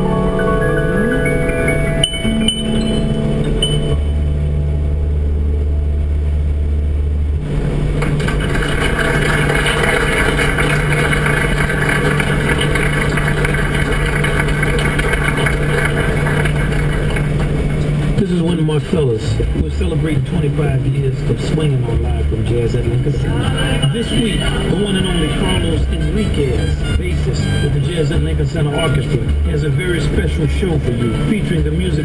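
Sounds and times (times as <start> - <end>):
road noise inside car: 0.0 - 32.0
car radio music: 10.6 - 32.0.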